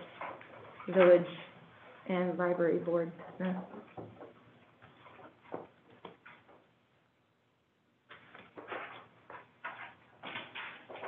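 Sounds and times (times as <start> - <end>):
faint clicks and taps: 2.5 - 6.7.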